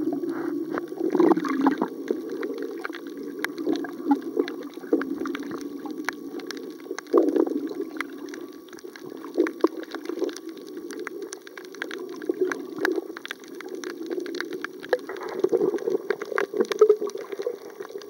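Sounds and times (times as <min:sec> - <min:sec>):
muffled underwater rush: 0:00.0 - 0:18.0
sharp clicks and crackles: 0:00.3 - 0:18.0.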